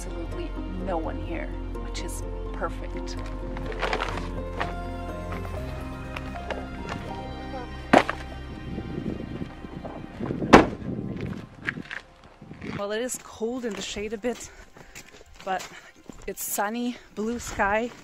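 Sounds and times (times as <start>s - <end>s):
background music: 0.0s - 18.0s
car tailgate thudding shut: 10.5s - 10.8s.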